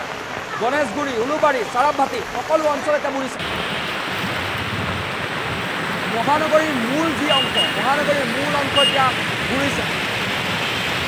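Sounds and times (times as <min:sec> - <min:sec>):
heavy rain and rushing floodwater: 0:00.0 - 0:11.0
person speaking: 0:06.1 - 0:10.0.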